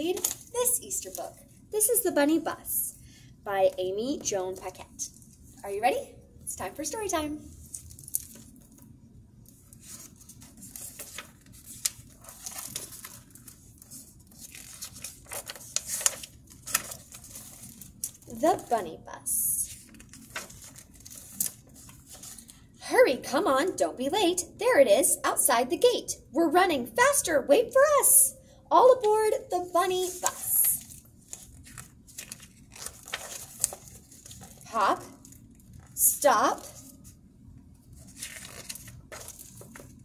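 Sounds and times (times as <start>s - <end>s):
paper page rustling: 0.0s - 1.5s, 7.5s - 8.9s, 9.5s - 18.7s, 19.6s - 22.6s, 29.0s - 37.2s, 37.8s - 40.0s.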